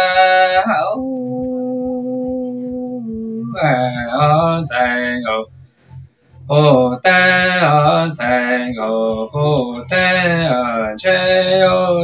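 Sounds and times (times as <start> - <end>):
man singing unaccompanied: 0.0 - 5.6, 6.4 - 12.0.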